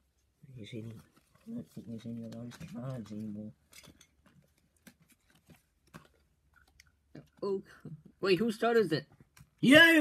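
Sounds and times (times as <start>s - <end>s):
playing cards clicking and rustling: 0.8s - 7.5s.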